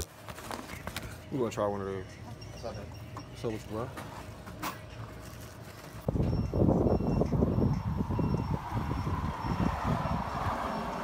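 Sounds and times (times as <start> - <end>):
wind rumble on microphone: 6.1 - 11.0.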